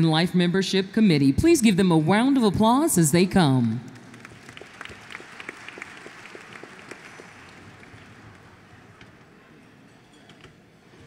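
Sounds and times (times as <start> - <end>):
audience applauding: 3.9 - 9.0.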